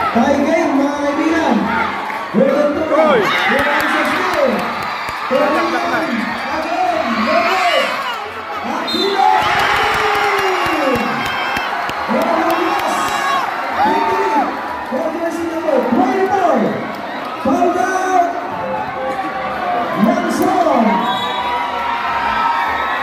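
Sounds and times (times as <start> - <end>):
crowd shouting and cheering: 0.0 - 23.0.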